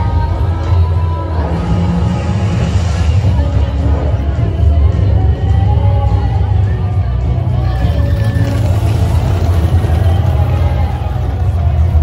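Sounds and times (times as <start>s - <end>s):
crowd voices: 0.0s - 12.0s.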